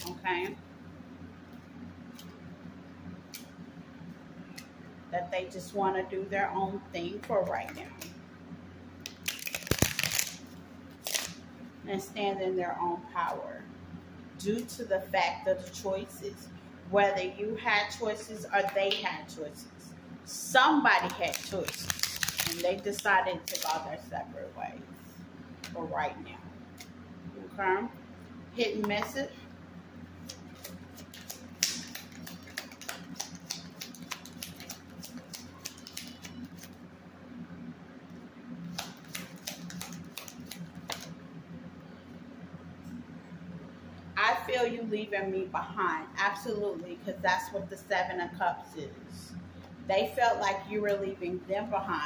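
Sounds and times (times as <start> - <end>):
faint low hum: 0.0 - 52.0
cards rustling and clicking: 9.1 - 10.4, 21.1 - 23.7, 30.3 - 36.8, 38.7 - 41.1.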